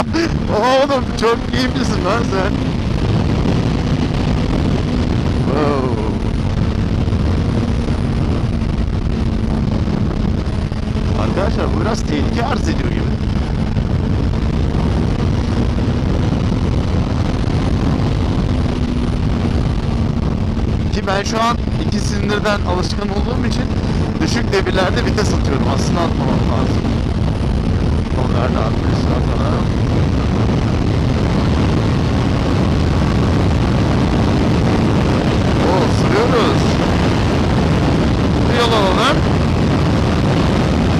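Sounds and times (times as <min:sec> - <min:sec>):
motorcycle engine cruising: 0:00.0 - 0:40.9
wind rushing over microphone: 0:00.0 - 0:40.9.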